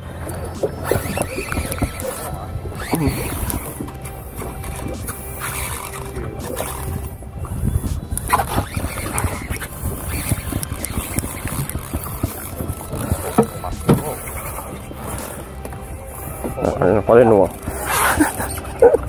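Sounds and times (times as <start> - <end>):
steady low hum: 0.0 - 19.0
wind noise on microphone: 0.0 - 19.0
fishing reel clicking and rattling: 0.1 - 16.8, 17.4 - 18.8.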